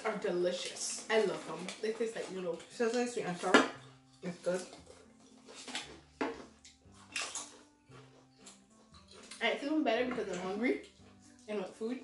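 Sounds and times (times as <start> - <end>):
faint background music: 0.0 - 12.0
potato crisps crunching: 6.7 - 7.6.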